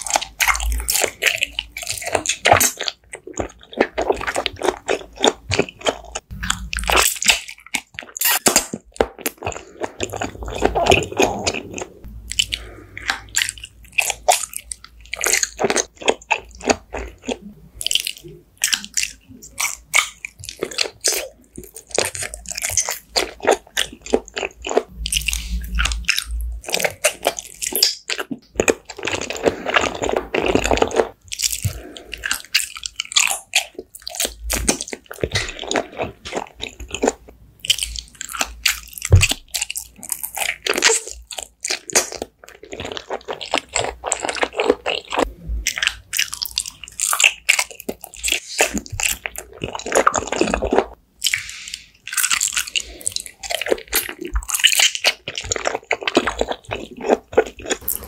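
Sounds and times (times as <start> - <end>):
close-miked crunchy chewing: 0.0 - 58.0.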